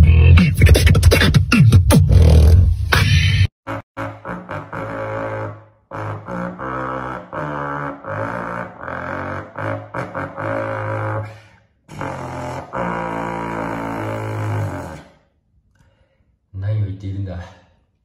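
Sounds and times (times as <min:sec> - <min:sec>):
vocal beatbox with bass notes: 0:00.0 - 0:03.8.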